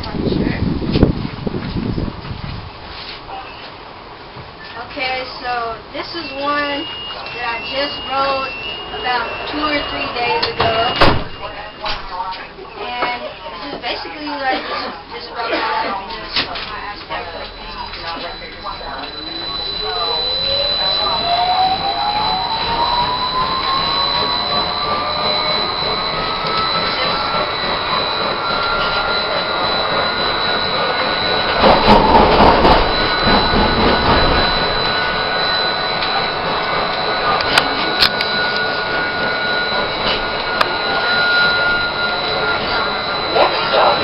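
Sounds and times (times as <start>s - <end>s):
streetcar motor whine: 0.0s - 44.0s
high-pitched tone: 5.8s - 13.4s, 16.1s - 44.0s
loud rumble: 17.1s - 44.0s.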